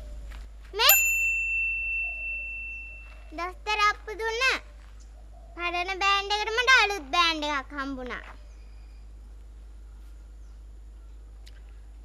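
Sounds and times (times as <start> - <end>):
bell-like ringing tone: 0.9 - 3.3.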